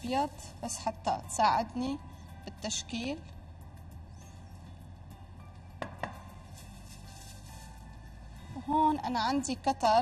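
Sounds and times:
kitchenware knocking on counter: 5.8 - 6.3.

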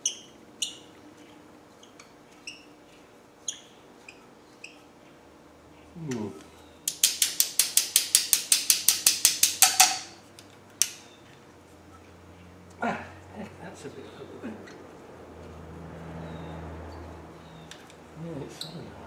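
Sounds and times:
ratchet tool clicking: 6.9 - 10.1.

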